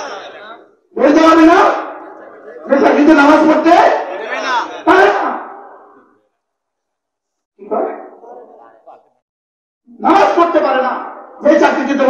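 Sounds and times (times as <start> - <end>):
man calling into microphone: 0.0 - 6.0, 9.9 - 12.0
man shouting with echo: 3.0 - 5.8.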